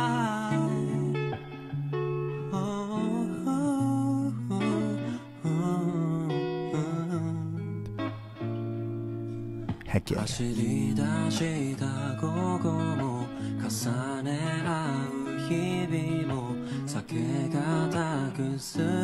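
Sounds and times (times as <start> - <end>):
man singing a slow ballad: 0.0 - 1.5, 2.4 - 7.8, 9.8 - 19.0
guitar and bass accompaniment: 0.0 - 19.0.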